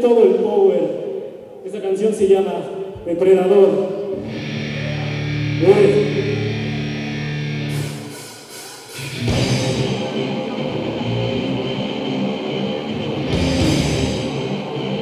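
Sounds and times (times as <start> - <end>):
electric guitar chord ringing: 4.1 - 15.0
heavy rock band playing: 4.2 - 15.0.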